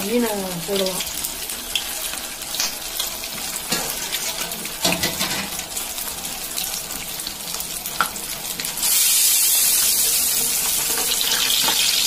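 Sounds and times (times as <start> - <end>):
fish sizzling in hot oil: 0.0 - 12.0.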